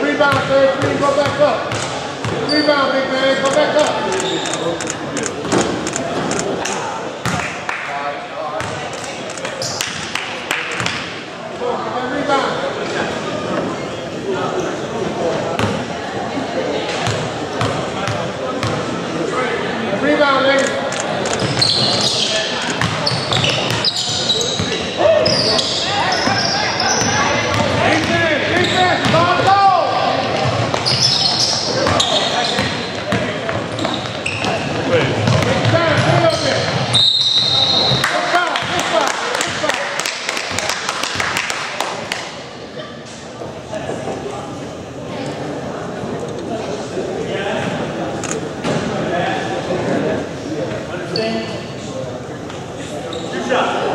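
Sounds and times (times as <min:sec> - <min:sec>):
people shouting and talking: 0:00.0 - 0:53.9
sneakers squeaking: 0:00.3 - 0:06.6, 0:08.6 - 0:10.1, 0:21.0 - 0:29.5, 0:30.2 - 0:38.2, 0:52.4 - 0:53.5.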